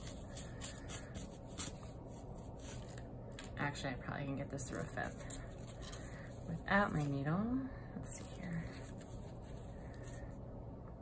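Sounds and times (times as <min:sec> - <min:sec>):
yarn rubbing and rustling: 0:00.0 - 0:03.0, 0:04.6 - 0:10.2.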